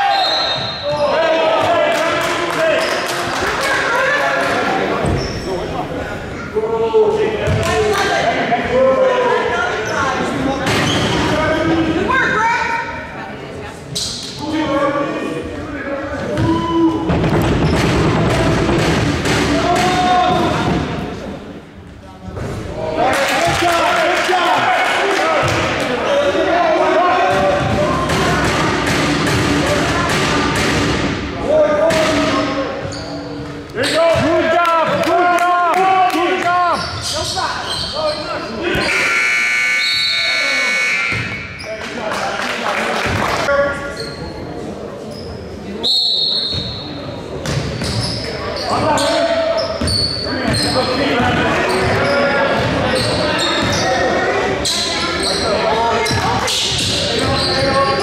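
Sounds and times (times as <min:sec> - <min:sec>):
players' voices echoing: 0:00.0 - 0:58.0.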